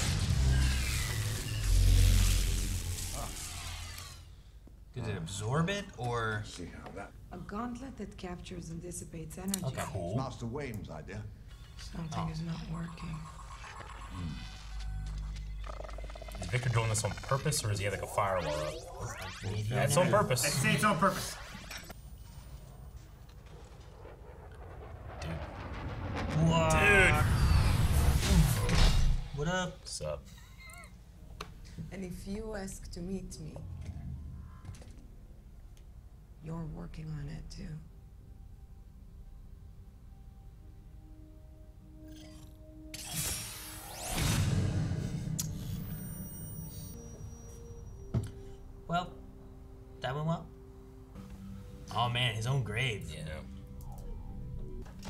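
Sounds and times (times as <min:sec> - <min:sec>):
held steady film score notes: 0:06.4 - 0:28.4
low rumble: 0:21.9 - 0:29.5, 0:32.0 - 0:39.9
steady low rumble: 0:22.1 - 0:29.6.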